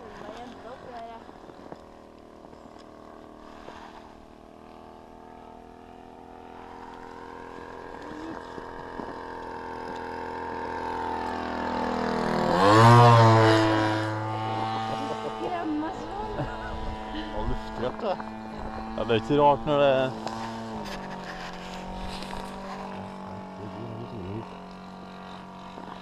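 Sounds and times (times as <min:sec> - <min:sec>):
model airplane engine droning: 0:00.0 - 0:26.0.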